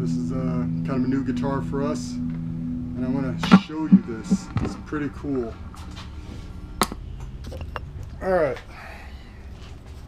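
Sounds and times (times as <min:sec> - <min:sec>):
low steady hum: 0:00.0 - 0:08.2.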